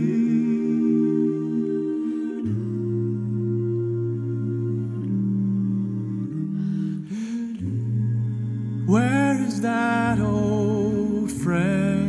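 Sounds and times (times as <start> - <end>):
group humming chords: 0.0 - 12.0.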